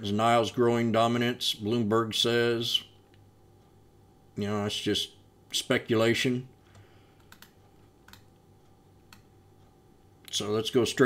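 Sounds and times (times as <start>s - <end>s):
faint steady hum: 0.0s - 11.0s
computer clicks: 6.7s - 8.4s, 9.0s - 9.3s.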